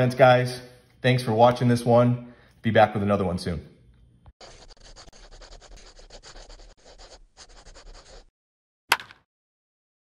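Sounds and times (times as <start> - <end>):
pen scribbling on paper: 4.4 - 8.3.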